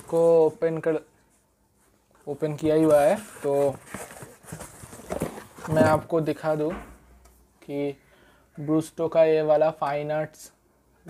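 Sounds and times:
cardboard box rustling: 2.4s - 6.4s.

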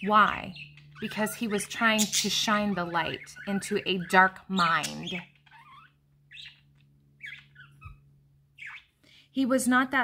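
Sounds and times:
faint bird chirps: 0.0s - 9.3s
steady low hum: 0.0s - 9.7s.

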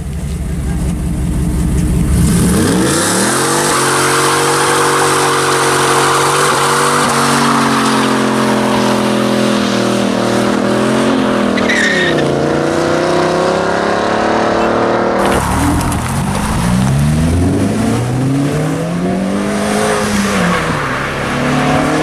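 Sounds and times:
car engine revving: 0.0s - 22.0s.

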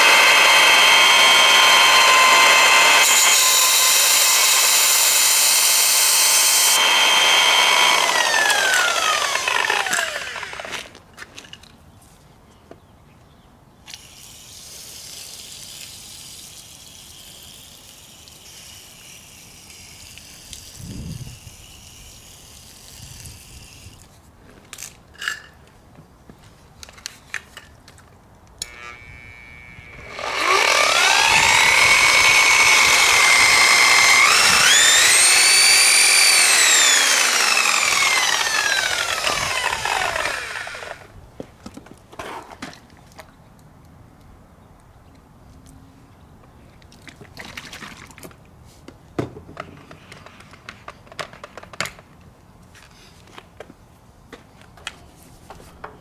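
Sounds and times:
electric polisher motor spinning: 0.0s - 10.9s, 28.6s - 41.1s.

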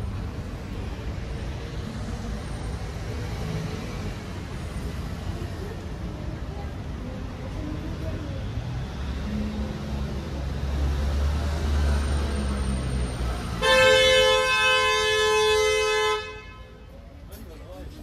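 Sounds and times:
passing vehicle rumble: 0.0s - 14.4s
vehicle horn blast: 13.6s - 16.8s.

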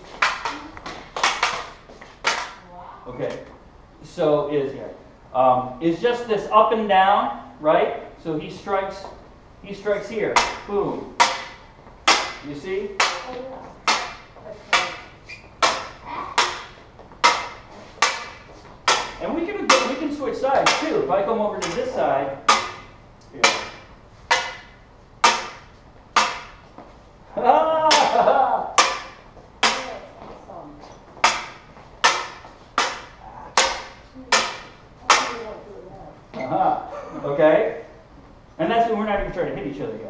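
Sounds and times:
lightsaber blades clacking: 0.1s - 2.6s, 10.3s - 26.7s, 27.9s - 30.3s, 31.2s - 35.7s.

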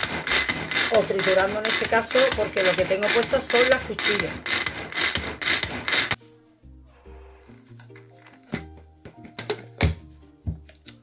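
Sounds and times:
food chopper cord rasping: 0.0s - 6.2s
gentle background music: 0.8s - 11.0s.

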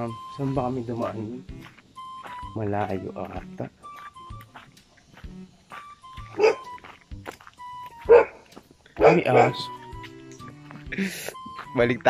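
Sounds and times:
background music: 0.0s - 12.0s
large dog barking: 6.3s - 6.6s, 8.1s - 8.4s, 9.0s - 9.7s.

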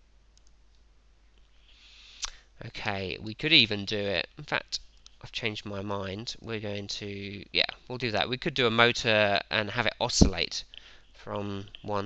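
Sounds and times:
faint computer mouse clicks: 0.4s - 0.8s.

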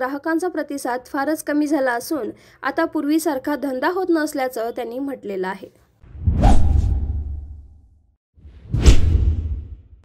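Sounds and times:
whoosh sound effects: 6.1s - 7.7s
deep rumble: 6.2s - 7.8s.

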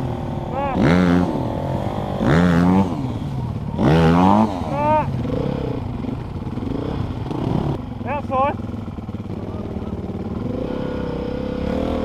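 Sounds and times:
dirt bike engines at low revs: 0.0s - 12.0s.

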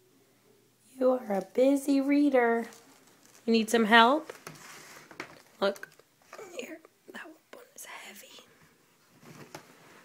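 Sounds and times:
person whispering: 6.4s - 8.5s.

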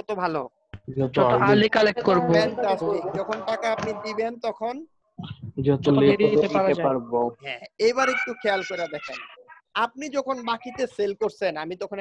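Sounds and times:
voices over a video call: 0.0s - 12.0s.

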